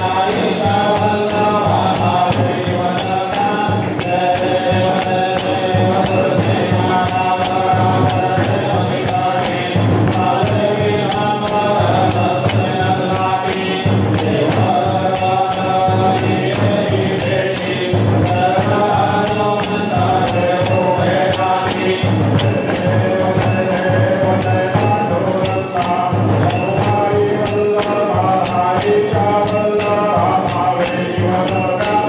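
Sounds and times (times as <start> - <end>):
devotional chant-like singing: 0.0 - 32.0
steady percussion beat: 0.0 - 32.0.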